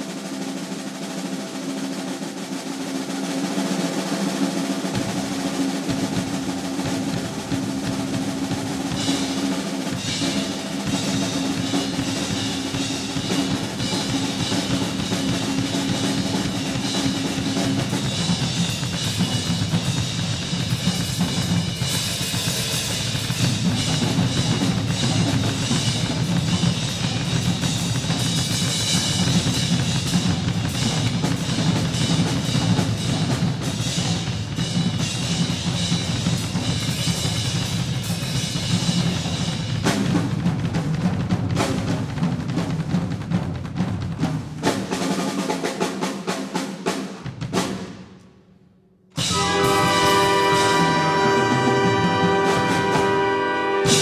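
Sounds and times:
drum kit solo: 0:00.0 - 0:48.2, 0:49.1 - 0:54.0.

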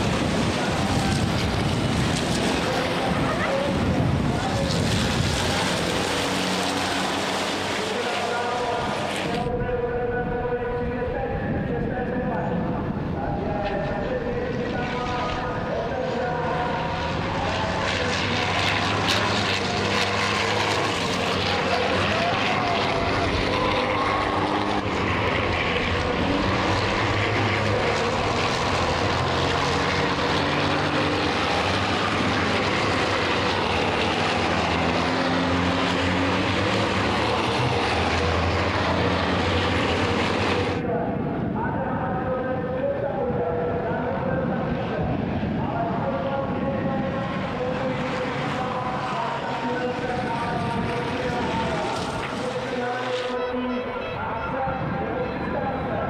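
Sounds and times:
racing truck engines: 0:00.0 - 0:56.0.

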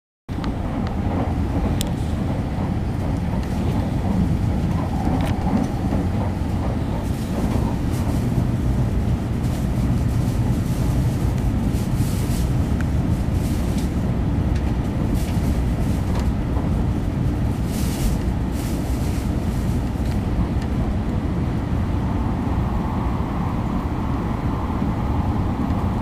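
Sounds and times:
train wheels rumbling on rail: 0:00.3 - 0:26.0.

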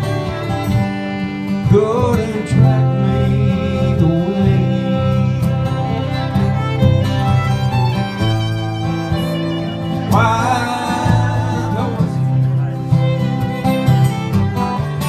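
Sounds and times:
acoustic guitars: 0:00.0 - 0:15.0
violin melody: 0:00.0 - 0:15.0.

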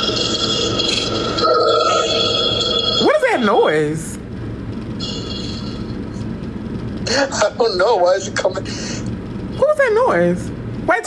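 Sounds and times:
low hum and rumble: 0:00.0 - 0:11.0.

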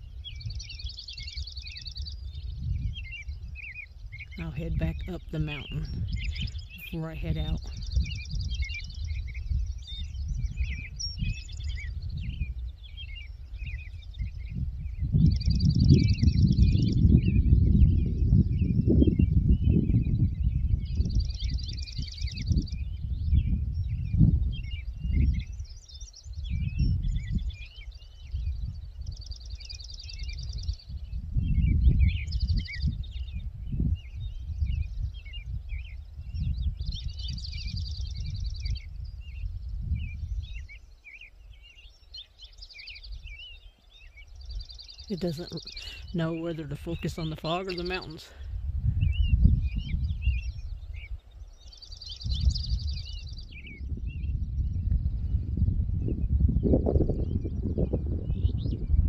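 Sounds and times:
songbirds singing: 0:00.0 - 0:59.0
wind rumble on microphone: 0:00.0 - 0:59.0.

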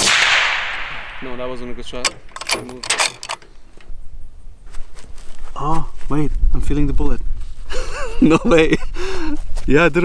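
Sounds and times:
rifle action metallic clicks: 0:01.8 - 0:04.0.

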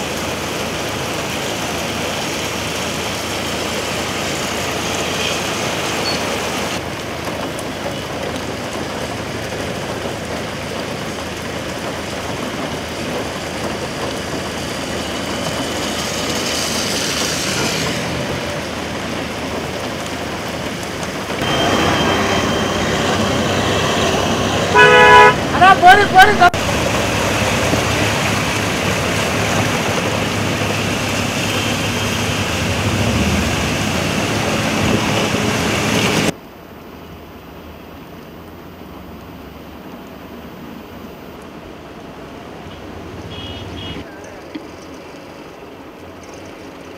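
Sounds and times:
tyres churning through water: 0:00.0 - 0:36.4
rain: 0:00.0 - 0:46.9
traffic on wet road: 0:00.0 - 0:46.9
car engines running: 0:06.6 - 0:36.4.

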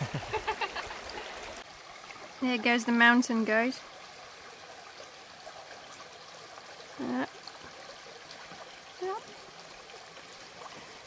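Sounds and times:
stream running over rocks: 0:00.0 - 0:11.0.

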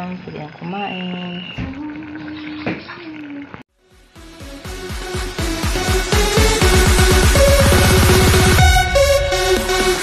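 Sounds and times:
stew bubbling in a pot: 0:00.0 - 0:03.6.

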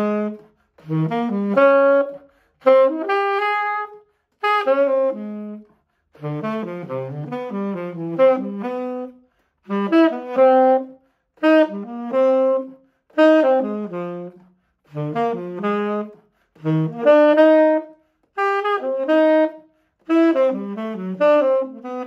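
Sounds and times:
tenor saxophone playing arpeggios: 0:00.0 - 0:22.0.

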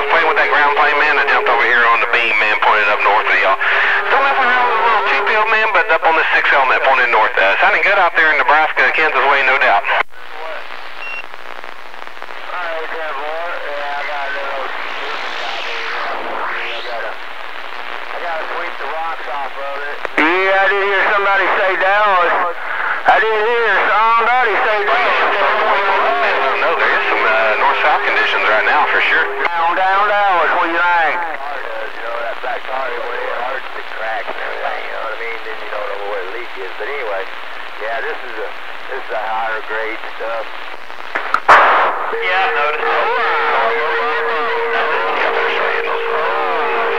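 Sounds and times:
faint distant radio voices: 0:00.0 - 0:10.7, 0:12.0 - 0:40.5, 0:41.9 - 0:46.9
radio static hiss: 0:00.0 - 0:46.9.

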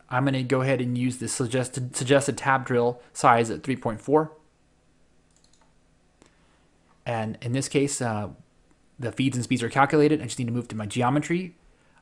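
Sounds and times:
computer mouse clicks: 0:05.3 - 0:06.4.

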